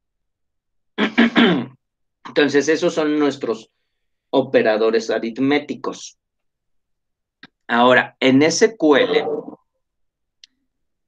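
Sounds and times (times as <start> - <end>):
man clearing his throat: 1.0 - 1.8.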